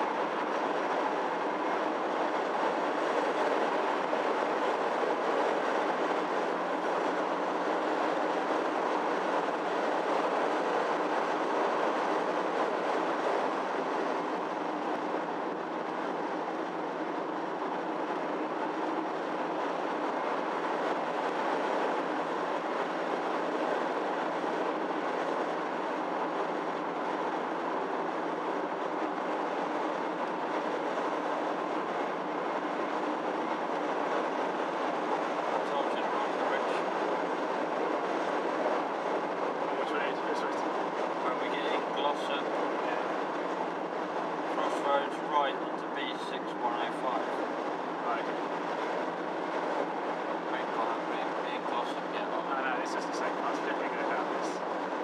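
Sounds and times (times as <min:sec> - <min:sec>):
car tyre and engine noise: 0:00.0 - 0:55.0.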